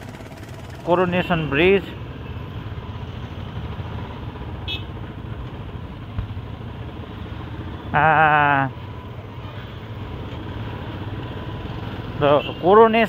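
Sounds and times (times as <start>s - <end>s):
motorcycle engine low rumble: 0.0s - 12.6s.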